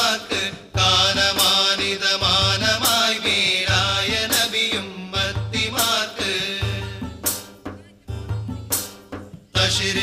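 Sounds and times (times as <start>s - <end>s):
frame drum beats: 0.0s - 10.0s.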